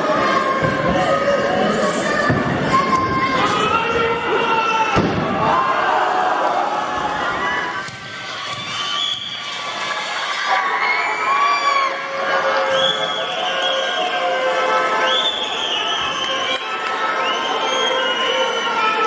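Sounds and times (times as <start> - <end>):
children cheering and shouting: 0.0 - 12.8.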